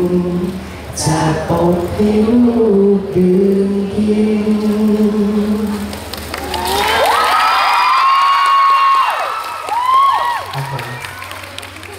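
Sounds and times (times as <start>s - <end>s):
audience screaming and cheering: 5.9s - 11.9s.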